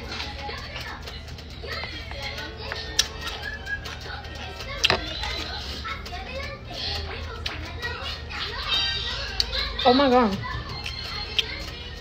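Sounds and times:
indistinct voices chattering: 0.0 - 12.0.

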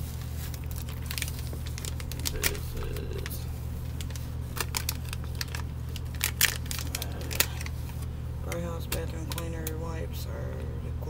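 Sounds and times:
plastic wrapper crinkling: 0.0 - 9.7
steady low hum: 0.0 - 11.0.

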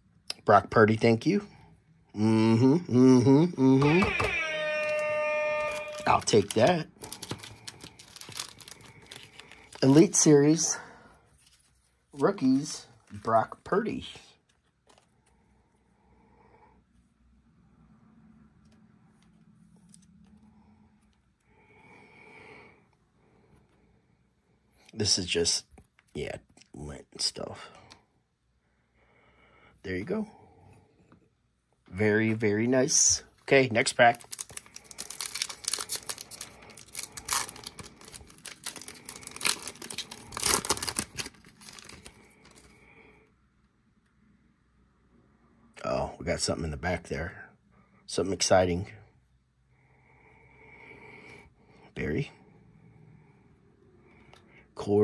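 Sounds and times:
card pack wrapper tearing: 5.6 - 10.2, 34.0 - 42.7
person breathing faintly: 7.0 - 9.9, 27.6 - 31.4.

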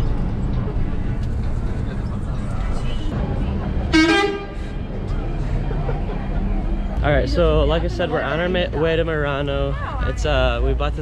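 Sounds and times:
bus engine rumble: 0.0 - 11.0
road noise: 0.0 - 11.0
vehicle horn toot: 3.9 - 4.6.

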